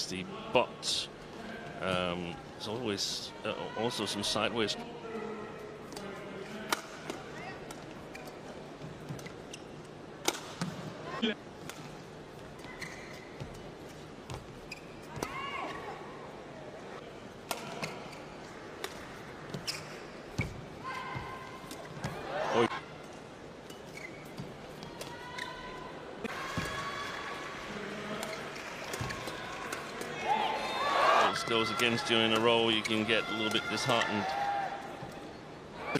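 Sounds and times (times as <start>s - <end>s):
court shoes squeaking: 5.9s - 15.7s, 17.5s - 22.3s, 22.9s - 25.8s, 28.1s - 30.2s, 31.7s - 34.2s.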